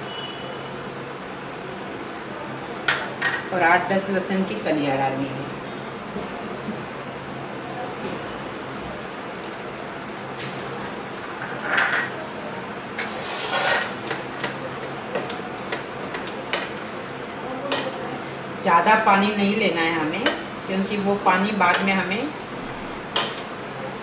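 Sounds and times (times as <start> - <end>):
hot water hissing in pan: 0.0 - 24.0
rustle of leaves: 9.0 - 14.0
utensils knocking against pan: 13.0 - 16.8, 23.1 - 23.4.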